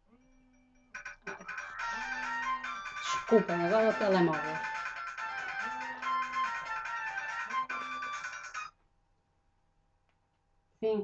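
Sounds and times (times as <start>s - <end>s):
mobile phone ringtone: 1.0s - 8.7s.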